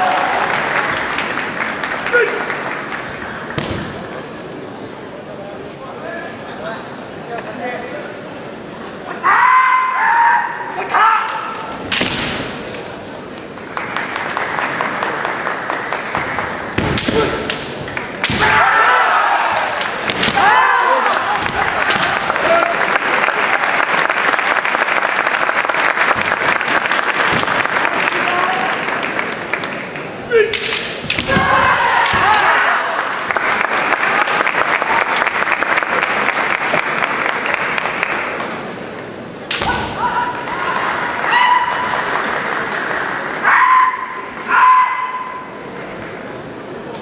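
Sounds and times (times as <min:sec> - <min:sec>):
din of voices in a hall: 0:00.0 - 0:47.0
fencers shouting: 0:09.1 - 0:11.8, 0:18.2 - 0:22.8, 0:30.3 - 0:33.0, 0:43.4 - 0:45.5
bamboo sword strikes: 0:11.9 - 0:12.7, 0:16.8 - 0:18.6, 0:19.8 - 0:20.6, 0:30.3 - 0:32.5, 0:39.5 - 0:40.0.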